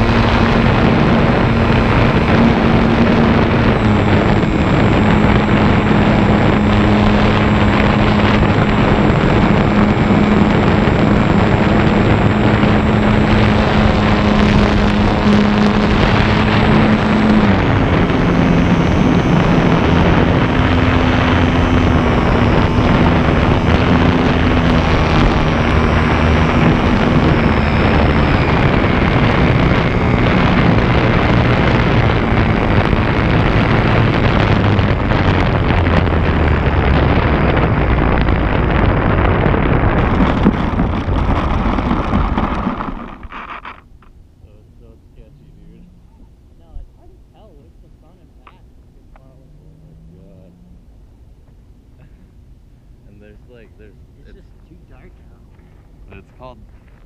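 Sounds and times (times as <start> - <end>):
electric motor and propeller hum: 0.0 - 57.0
wind buffeting microphone: 0.0 - 57.0.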